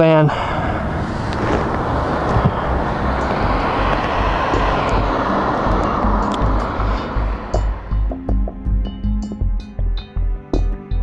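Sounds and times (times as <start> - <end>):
road noise: 0.0 - 10.7
background music with low beat: 2.4 - 11.0.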